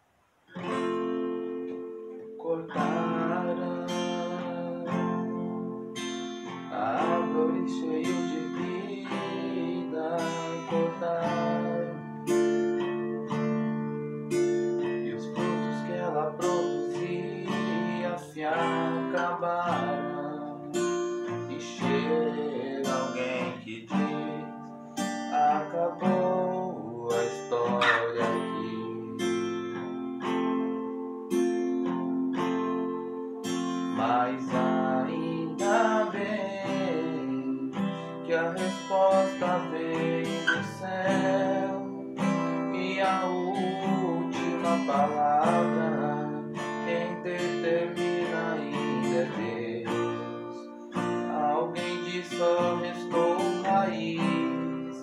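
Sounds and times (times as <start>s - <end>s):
acoustic guitar strumming chords: 0.0s - 55.0s.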